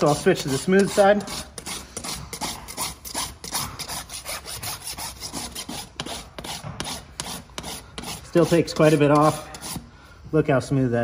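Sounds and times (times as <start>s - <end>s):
rasp filing a hoof: 0.0s - 10.0s.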